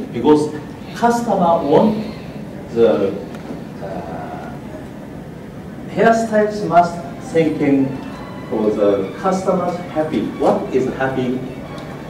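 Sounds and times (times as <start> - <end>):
hall background noise: 0.0 - 12.0.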